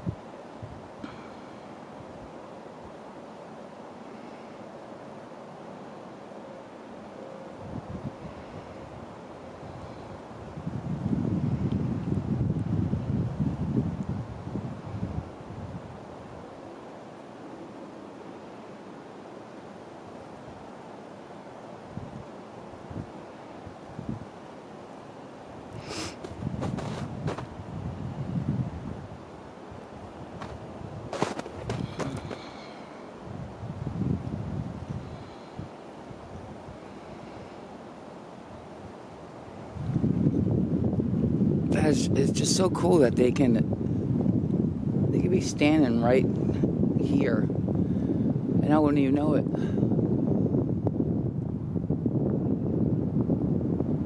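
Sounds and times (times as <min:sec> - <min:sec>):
wind buffeting microphone: 0:00.0 - 0:03.0, 0:07.6 - 0:16.7, 0:21.8 - 0:24.5, 0:25.5 - 0:37.6, 0:38.4 - 0:54.0
steady hiss: 0:00.0 - 0:50.2.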